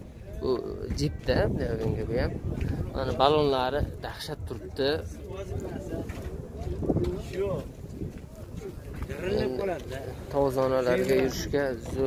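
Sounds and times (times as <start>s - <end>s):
people talking: 0.2s - 12.0s.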